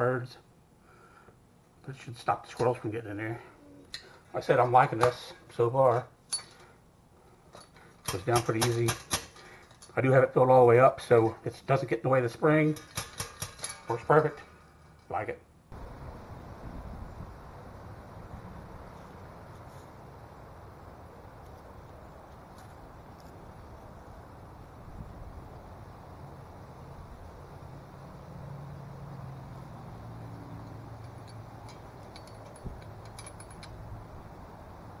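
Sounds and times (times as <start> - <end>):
distant road traffic: 11.0 - 35.0
vehicle passing hum: 15.7 - 35.0.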